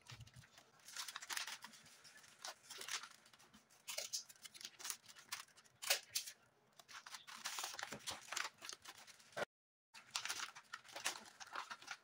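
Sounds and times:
wrapping paper rustling: 0:00.0 - 0:12.0.

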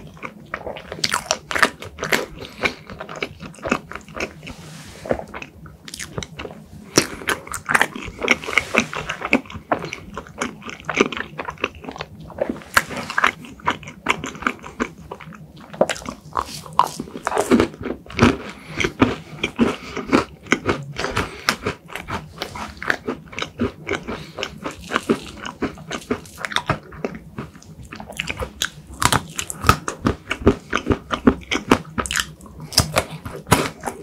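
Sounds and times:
close chewing mouth clicks: 0:13.1 - 0:34.0.

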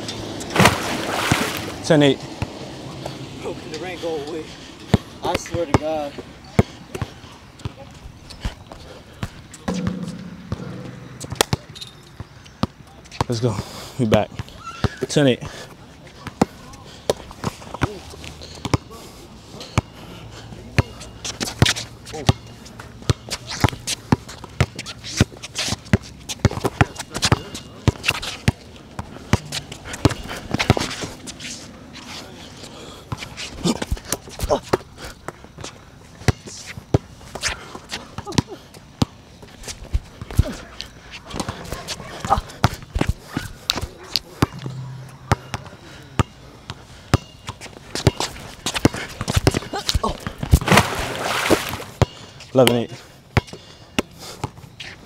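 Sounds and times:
basketball bouncing on hard court: 0:09.7 - 0:11.6.

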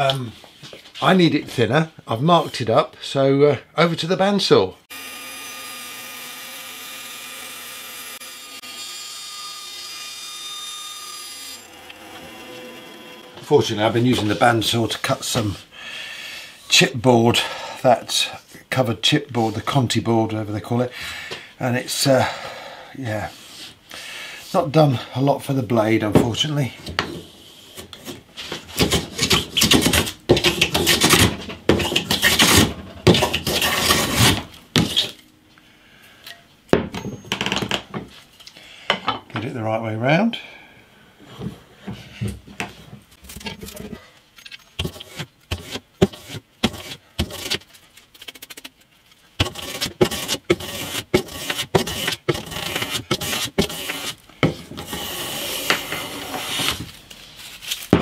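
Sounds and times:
hand plane scraping wood: 0:11.9 - 0:14.8, 0:27.2 - 0:35.2, 0:44.8 - 0:47.7, 0:49.4 - 0:57.0.

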